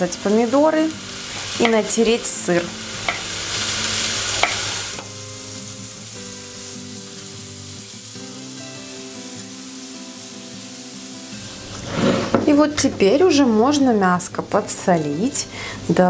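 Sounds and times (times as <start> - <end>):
mushrooms sizzling in a frying pan: 0.0 - 16.0
soft background music: 0.0 - 16.0.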